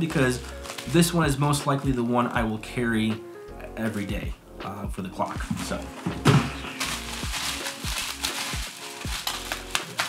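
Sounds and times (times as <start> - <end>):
bubble wrap crinkling: 0.0 - 1.8, 5.5 - 10.0
music with bass beat: 3.0 - 9.9
loud thump: 6.1 - 6.6.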